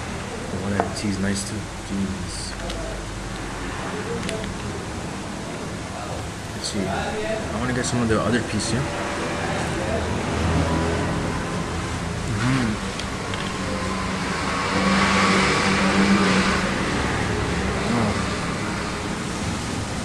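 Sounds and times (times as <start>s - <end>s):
low background voices: 0.0s - 18.7s
motor vehicle running: 7.7s - 20.0s.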